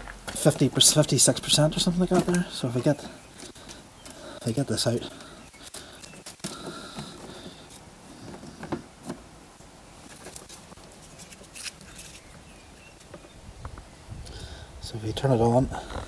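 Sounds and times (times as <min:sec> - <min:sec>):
handling clicks and rustles: 0:00.0 - 0:13.8.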